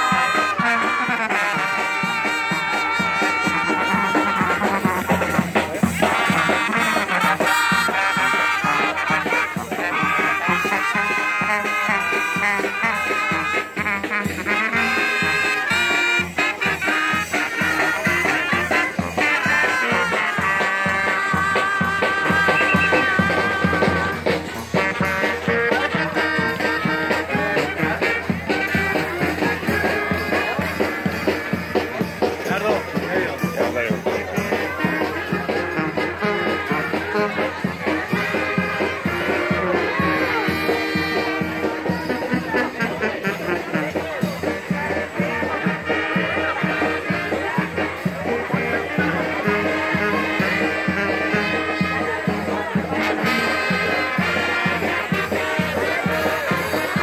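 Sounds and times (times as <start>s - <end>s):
brass band playing: 0.0s - 57.0s
drum beat: 0.0s - 57.0s.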